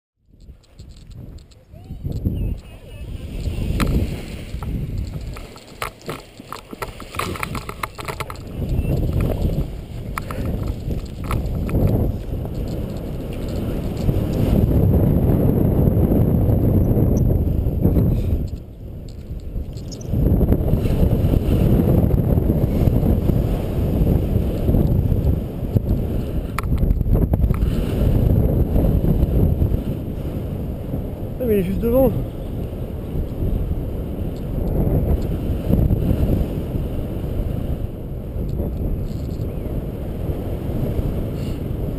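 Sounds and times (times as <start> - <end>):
wind buffeting microphone: 0.2 - 41.9
knocks and rustles: 3.8 - 14.1.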